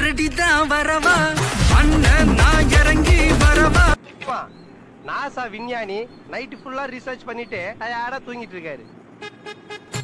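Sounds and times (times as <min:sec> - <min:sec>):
wavering sung voice: 0:00.0 - 0:09.0.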